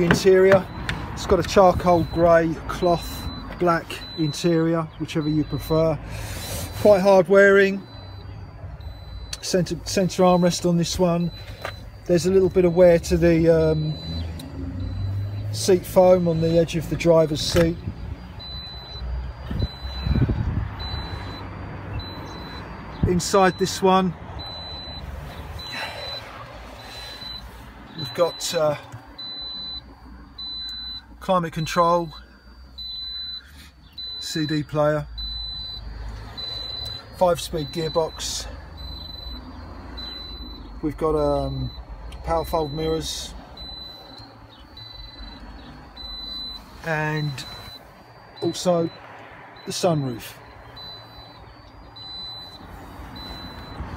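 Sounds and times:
high electronic beep: 0.0 - 53.9.

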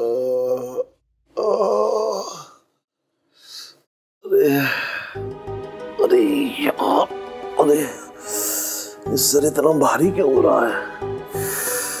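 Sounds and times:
man groaning: 0.0 - 2.6.

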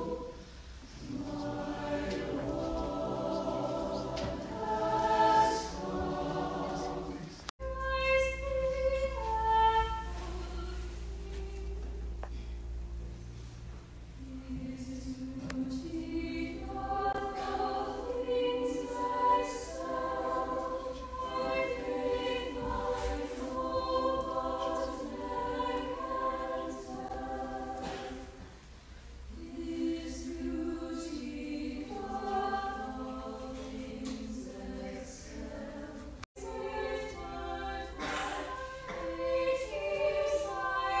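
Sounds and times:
choir singing in harmony: 0.0 - 12.2, 14.2 - 41.0.

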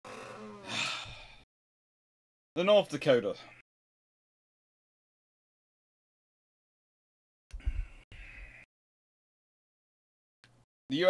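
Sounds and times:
person gasping: 0.4 - 1.4.

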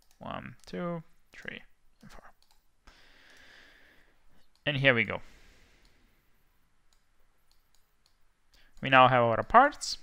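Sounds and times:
computer mouse clicks: 0.0 - 0.8, 1.4 - 3.5, 6.9 - 8.9
man speaking: 0.2 - 2.4, 4.6 - 5.3, 8.8 - 10.0.

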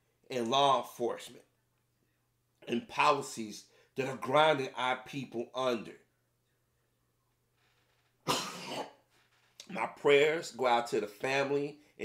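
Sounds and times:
man coughing: 8.2 - 9.0.

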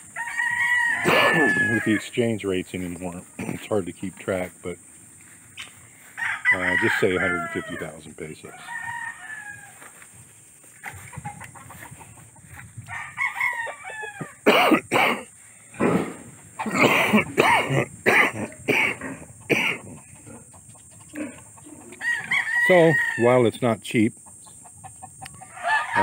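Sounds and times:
chickens clucking: 0.0 - 8.7, 10.5 - 12.9, 15.8 - 26.0
roosters crowing: 0.0 - 26.0.

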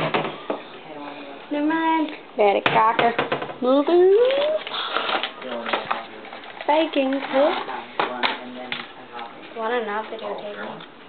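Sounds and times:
woman speaking: 1.0 - 4.6.

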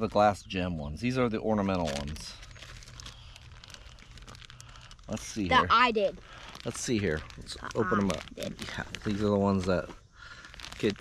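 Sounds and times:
plastic bag crinkling: 1.4 - 11.0.

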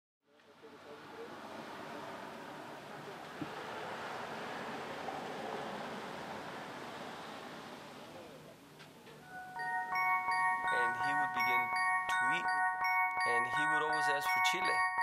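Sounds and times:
tyre and road noise: 0.3 - 9.2
vehicle driving past: 0.4 - 8.6.

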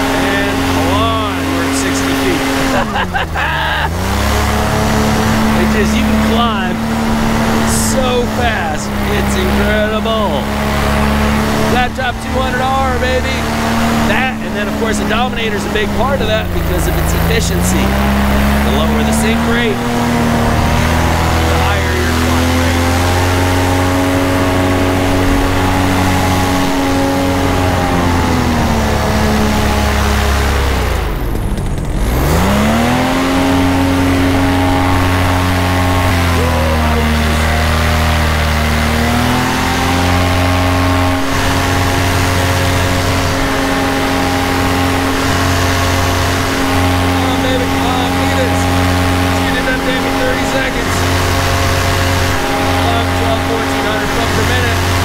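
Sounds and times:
paramotor engine and propeller: 0.0 - 55.0.

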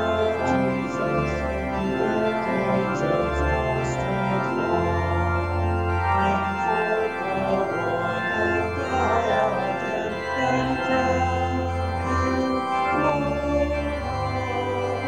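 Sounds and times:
church organ chords: 0.0 - 15.0.

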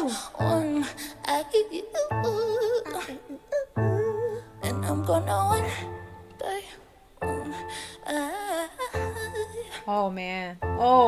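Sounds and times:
soft backing music: 0.0 - 11.0
woman singing: 0.0 - 11.0.

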